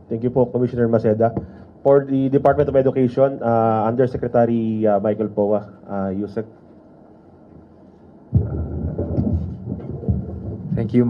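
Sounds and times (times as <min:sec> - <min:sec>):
microphone handling rumble and thumps: 0:08.3 - 0:11.0.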